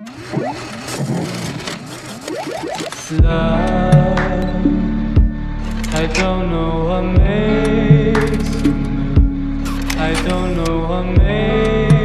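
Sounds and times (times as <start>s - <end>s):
rising electronic pitch sweeps: 0.1s - 0.8s, 2.2s - 3.1s.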